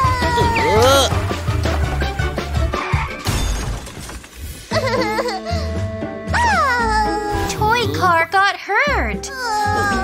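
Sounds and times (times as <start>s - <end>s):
music: 0.0s - 3.6s, 4.7s - 10.0s
cartoon crash shattering: 3.2s - 4.6s.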